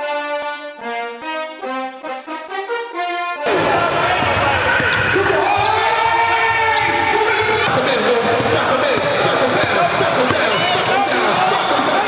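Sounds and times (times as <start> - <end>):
brass music: 0.0 - 12.0
voices echoing in a hall: 3.4 - 12.0
basketball bouncing on hardwood: 3.6 - 11.1.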